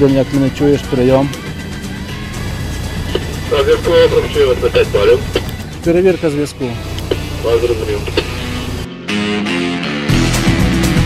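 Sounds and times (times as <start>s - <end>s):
fire engine idling: 0.4s - 8.9s.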